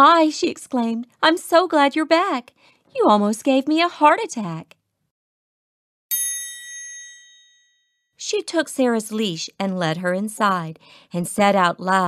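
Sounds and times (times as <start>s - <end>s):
bright chime ringing: 6.1s - 8.0s.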